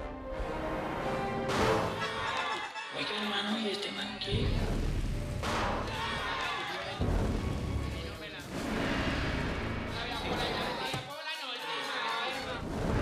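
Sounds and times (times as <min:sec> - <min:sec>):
dramatic music: 0:00.0 - 0:02.5, 0:04.3 - 0:10.8
deep booms: 0:07.0 - 0:10.3.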